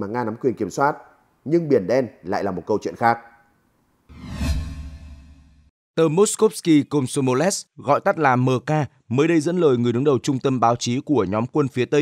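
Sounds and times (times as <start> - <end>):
deep low rumble: 4.1 - 5.7
whoosh sound effect: 4.1 - 5.7.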